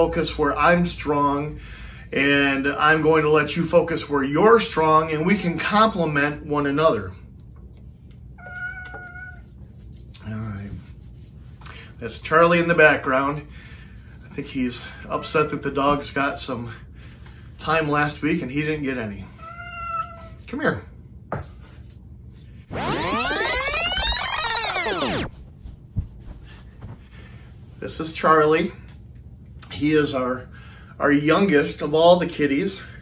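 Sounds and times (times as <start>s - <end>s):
cat meowing: 8.4s - 9.4s, 19.4s - 20.4s
synth sweep gliding up and down: 22.7s - 25.4s.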